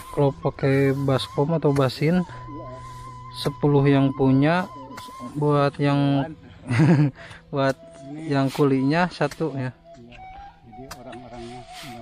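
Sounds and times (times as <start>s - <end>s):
wavering held musical note: 0.0s - 6.6s.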